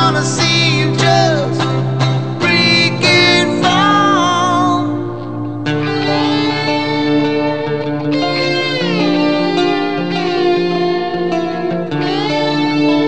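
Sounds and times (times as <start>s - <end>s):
rock band backing: 0.0s - 13.0s
sustained lead guitar notes: 0.0s - 13.0s.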